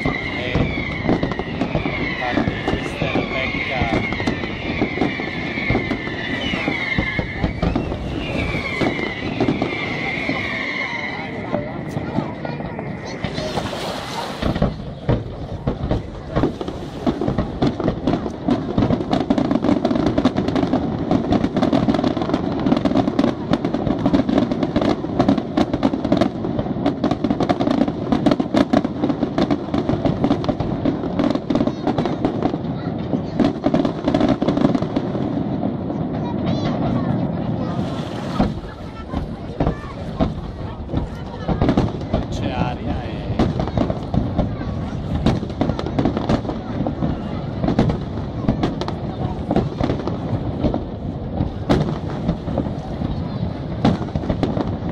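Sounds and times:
firework shells bursting: 0.0s - 35.7s
firework crackles: 0.0s - 54.9s.

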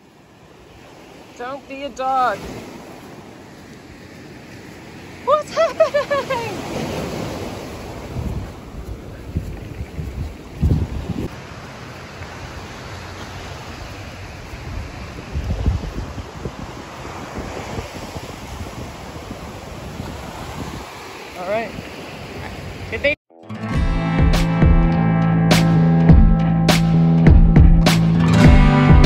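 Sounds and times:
ocean surf breaking: 0.0s - 23.2s
wind buffeting microphone: 2.0s - 11.6s, 12.2s - 23.0s.

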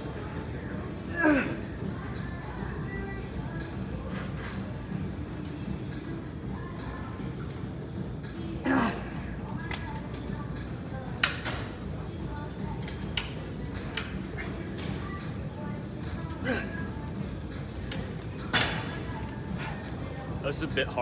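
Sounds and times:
gym room hum: 0.0s - 21.0s.

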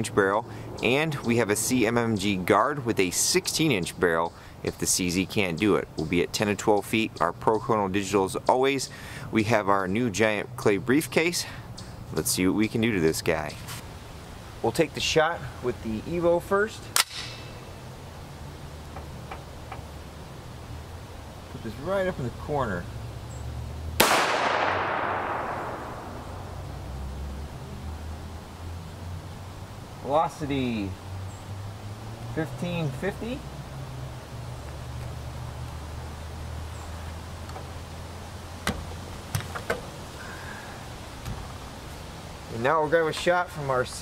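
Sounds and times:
sharp click: 17.0s - 17.4s.

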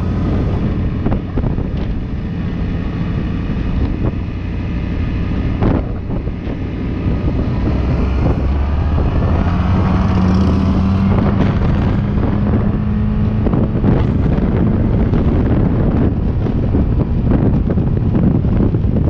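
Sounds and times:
motorbike engine running: 0.0s - 19.0s
wind buffeting microphone: 0.0s - 19.0s.

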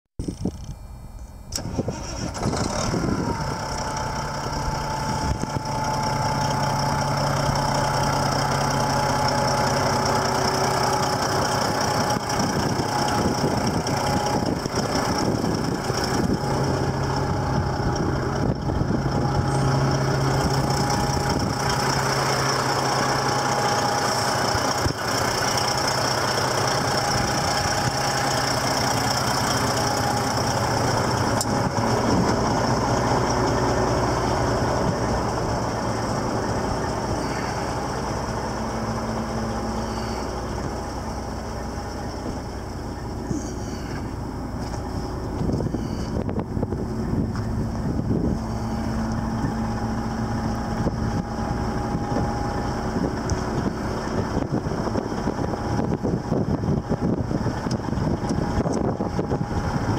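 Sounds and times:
diesel engine idling: 0.2s - 59.9s
thin steady whine: 3.1s - 59.9s.

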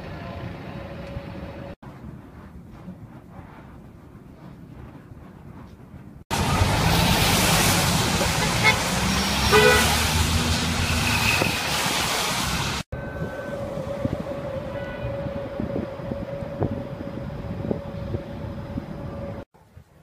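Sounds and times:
city street traffic: 0.0s - 1.8s, 6.2s - 19.4s
distant city noise with hum: 0.0s - 20.0s
bus passing close by: 6.3s - 19.4s
car horn toot: 8.4s - 8.9s, 9.5s - 10.0s, 14.7s - 15.2s.

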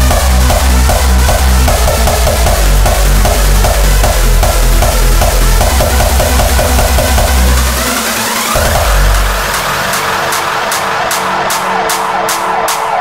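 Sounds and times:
pounding bass kick: 0.0s - 10.0s
hardstyle electronic dance music: 0.0s - 13.0s
rhythmic noise hits: 0.0s - 13.0s
sweeping synth effects: 0.0s - 13.0s.

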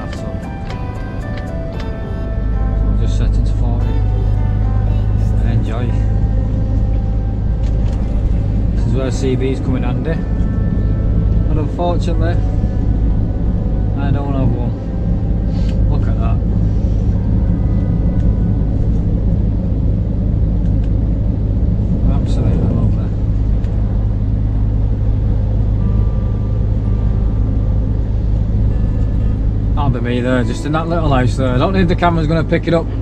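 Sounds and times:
low truck engine drone: 0.0s - 33.0s
road rumble: 0.0s - 33.0s.

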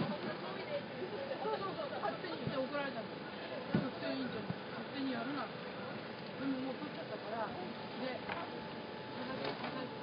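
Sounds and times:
indistinct conversation: 0.0s - 10.0s
street noise: 0.0s - 10.0s.

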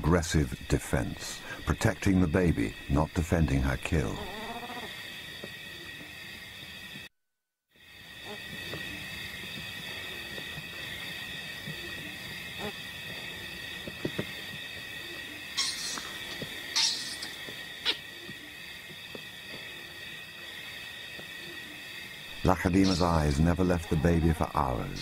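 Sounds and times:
high-pitched background drone: 0.0s - 7.0s, 7.9s - 25.0s
night insects trilling: 0.0s - 7.1s, 7.7s - 25.0s.

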